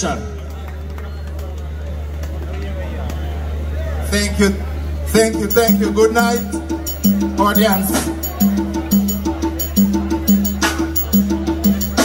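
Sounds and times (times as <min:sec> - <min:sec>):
faint crowd voices talking: 0:00.0 - 0:12.0
sound system hum: 0:04.5 - 0:12.0.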